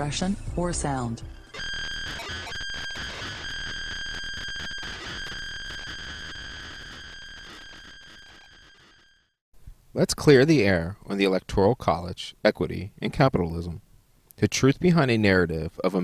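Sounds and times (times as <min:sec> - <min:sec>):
high synthesized tone: 0:00.0 - 0:09.1
glitchy crackling clicks: 0:01.3 - 0:09.3.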